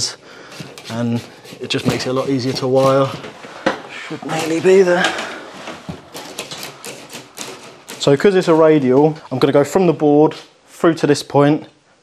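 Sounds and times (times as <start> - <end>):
draw wire scraping inside conduit: 0.0 - 3.4, 5.6 - 8.7.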